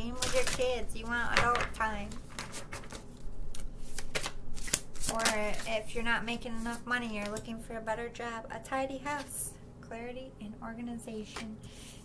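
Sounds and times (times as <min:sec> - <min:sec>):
cards being shuffled by hand: 0:00.0 - 0:07.6.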